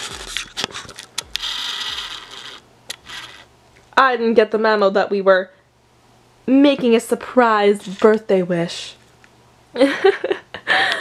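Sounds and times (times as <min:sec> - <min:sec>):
camera lens motor whir: 0:00.0 - 0:03.5.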